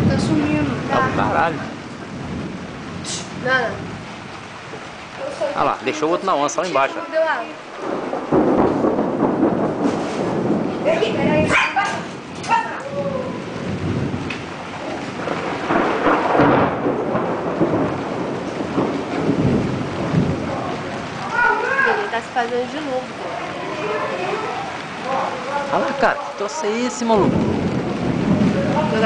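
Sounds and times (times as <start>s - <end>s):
low thunder rumbling: 0.0s - 29.0s
thunderstorm rush: 0.0s - 29.0s
dog barking: 11.5s - 12.8s.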